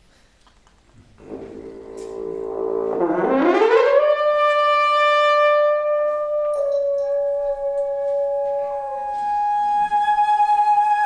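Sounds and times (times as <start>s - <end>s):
french horn long note: 1.2s - 9.5s.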